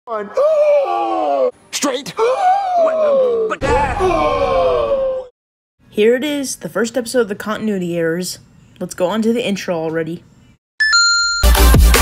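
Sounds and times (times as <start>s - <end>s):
person crying out: 0.2s - 5.3s.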